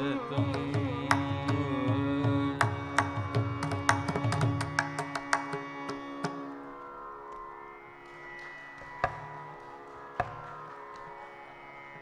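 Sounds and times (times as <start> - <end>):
classical concert music with drone: 0.0 - 12.0.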